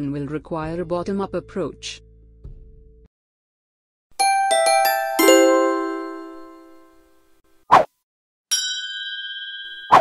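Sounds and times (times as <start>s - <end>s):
bell-like chime jingle: 4.2s - 7.2s, 8.5s - 10.0s.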